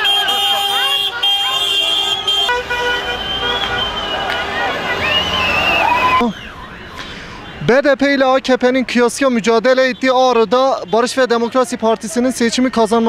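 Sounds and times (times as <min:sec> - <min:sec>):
people shouting and cheering: 0:00.0 - 0:07.0
car horns blasting: 0:00.0 - 0:07.7.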